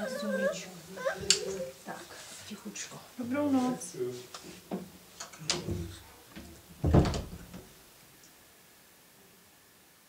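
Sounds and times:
door closing: 0:04.8 - 0:07.7.

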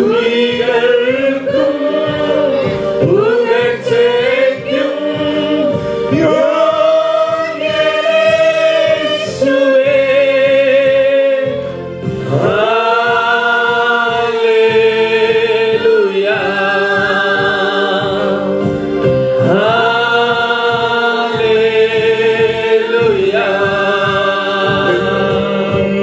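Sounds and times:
man and women singing worship song: 0:00.0 - 0:26.0.

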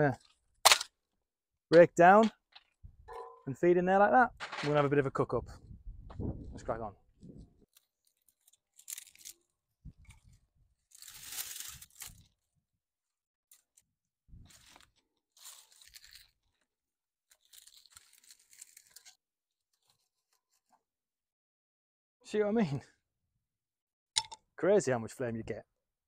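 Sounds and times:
dry cane snapping and cracking: 0:00.6 - 0:00.9, 0:07.7 - 0:09.4, 0:10.9 - 0:12.3, 0:14.6 - 0:16.3, 0:17.4 - 0:19.1.

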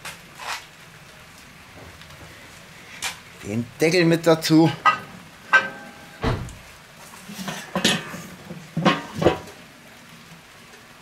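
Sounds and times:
metal lids clanking on grill: 0:04.7 - 0:06.3, 0:07.2 - 0:09.6.

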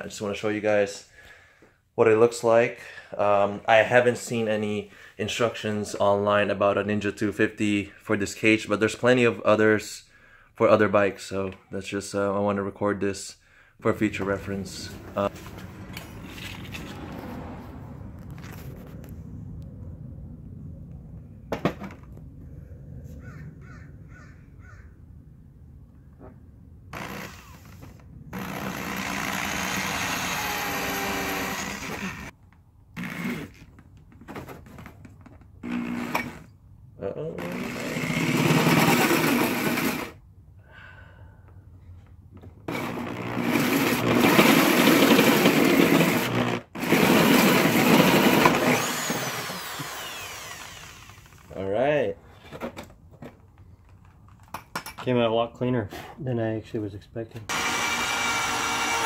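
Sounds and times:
drill cutting through plastic: 0:26.9 - 0:32.3, 0:33.0 - 0:33.6, 0:35.6 - 0:36.5, 0:37.4 - 0:40.2, 0:42.7 - 0:51.5, 0:57.5 - 0:59.0
drill spinning down whine: 0:27.0 - 0:32.3, 0:35.6 - 0:36.5, 0:37.4 - 0:40.2, 0:42.7 - 0:51.5, 0:57.5 - 0:59.0.

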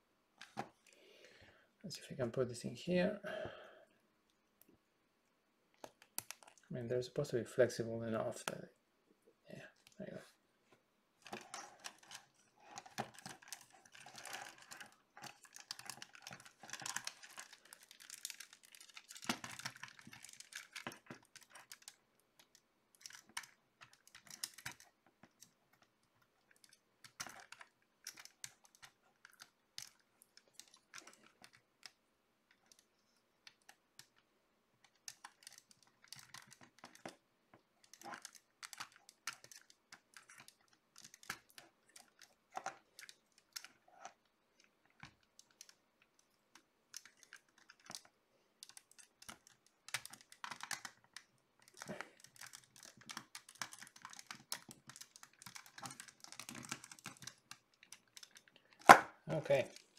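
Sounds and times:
plastic parts clicking: 0:11.2 - 0:25.9, 0:26.5 - 0:34.2, 0:34.8 - 0:37.2, 0:37.8 - 0:59.0.

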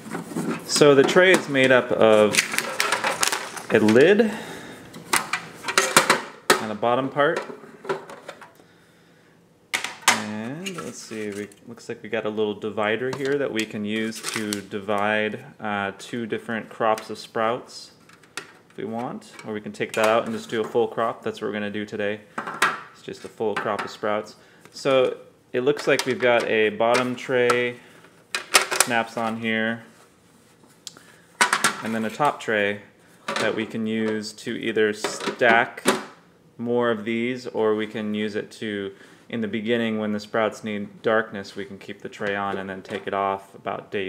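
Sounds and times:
person speaking: 0:00.0 - 0:04.7, 0:05.6 - 0:07.6, 0:10.1 - 0:18.0, 0:18.7 - 0:22.3, 0:23.0 - 0:27.9, 0:28.7 - 0:30.0, 0:31.6 - 0:36.0, 0:36.6 - 0:44.0.

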